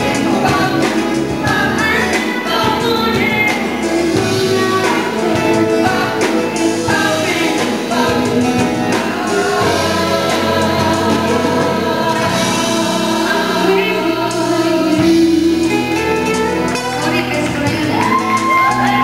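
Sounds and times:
backing singers: 0.0 - 19.0
band accompaniment: 0.0 - 19.0
woman singing lead: 0.0 - 19.0.

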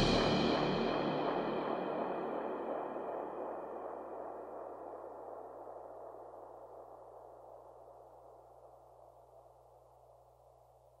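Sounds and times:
hissing wash of techno music: 0.0 - 4.3
low held drone: 0.0 - 7.0.

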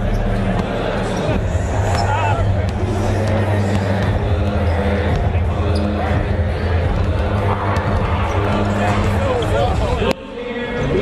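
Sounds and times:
arena background noise: 0.0 - 11.0
basketballs bouncing on court: 1.9 - 5.6.

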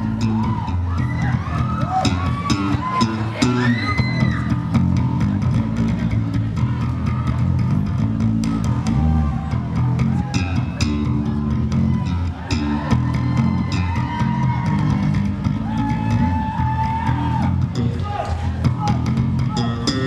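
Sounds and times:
electric guitar solo: 0.2 - 5.9, 19.4 - 20.0.

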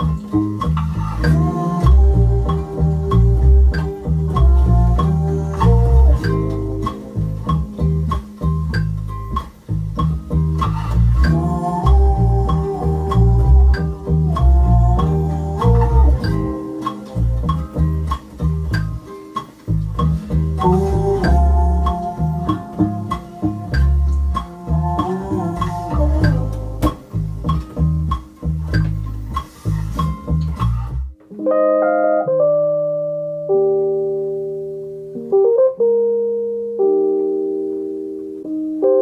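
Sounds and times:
electric bass plucked notes: 0.0 - 39.0
sustained backing chords: 0.0 - 39.0.

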